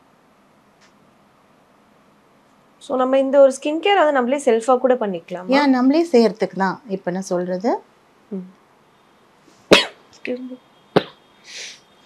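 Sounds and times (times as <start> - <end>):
person coughing: 9.7 - 10.0.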